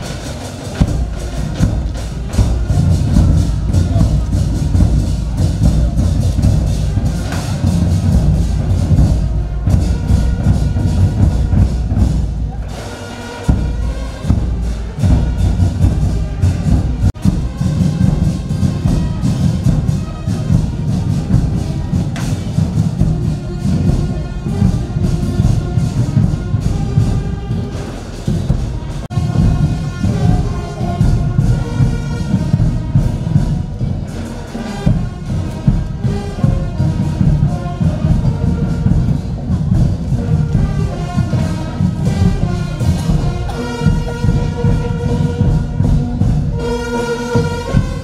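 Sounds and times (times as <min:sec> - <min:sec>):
accompanying music: 0:00.0 - 0:48.0
large drum beating: 0:00.0 - 0:48.0.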